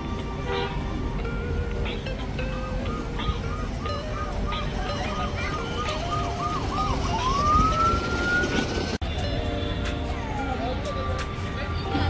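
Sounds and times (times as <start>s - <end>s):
warbling electronic siren: 2.8s - 9.0s
rising siren whoop: 3.5s - 9.0s.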